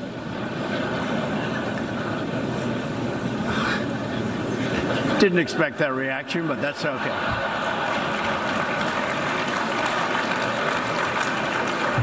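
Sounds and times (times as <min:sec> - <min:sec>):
crowd laughing and murmuring: 0:00.0 - 0:12.0.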